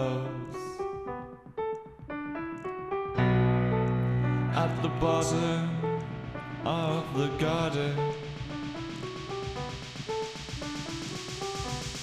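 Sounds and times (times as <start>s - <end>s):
instrumental melody over low beat: 0.0s - 12.0s.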